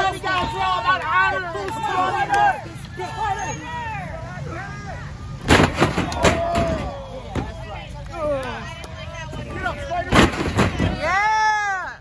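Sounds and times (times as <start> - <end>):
crowd voices: 0.0 - 12.0
body crashing onto wrestling ring: 5.5 - 7.5
smaller bang: 5.5 - 7.5.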